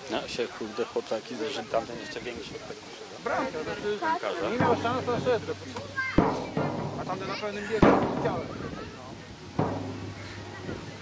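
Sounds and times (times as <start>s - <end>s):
distant voices: 0.0s - 11.0s
faint knock: 4.5s - 8.6s
sharp thud: 6.1s - 8.6s, 9.6s - 10.4s.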